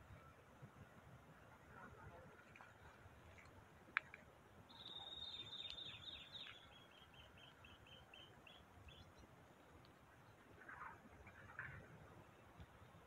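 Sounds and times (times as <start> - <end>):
songbird singing faintly: 0.0 - 13.0.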